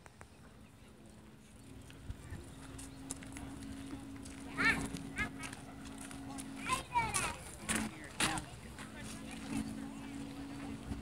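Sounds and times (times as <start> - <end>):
onlookers' voices: 0.0 - 11.0.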